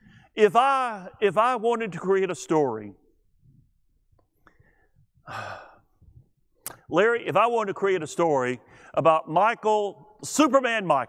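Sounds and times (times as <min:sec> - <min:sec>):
man sighing: 0:05.2 - 0:06.2.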